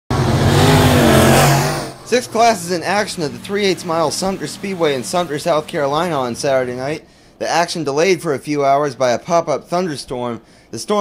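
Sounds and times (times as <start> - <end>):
race car engine running hard: 0.1 - 6.8.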